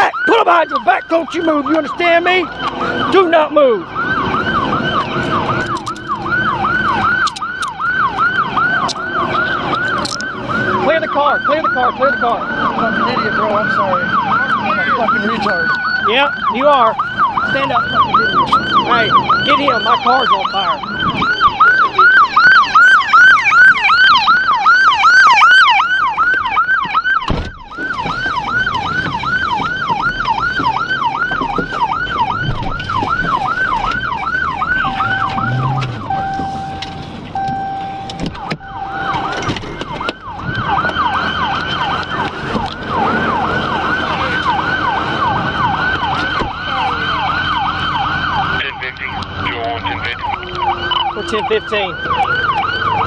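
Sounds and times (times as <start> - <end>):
police siren yelping: 0.0 - 53.0
short electronic beeps: 35.0 - 39.3.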